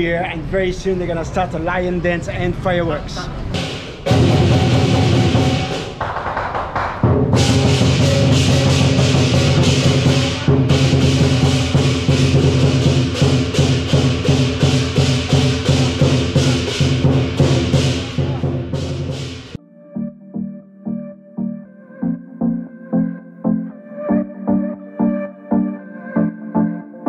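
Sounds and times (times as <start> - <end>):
cymbals clashing: 3.5 - 6.2, 7.1 - 19.6
large drum beating: 3.5 - 19.6
gong: 3.6 - 6.0, 7.3 - 19.3.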